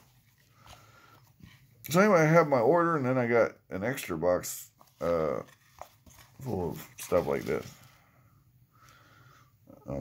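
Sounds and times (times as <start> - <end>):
person speaking: 1.8 - 8.0.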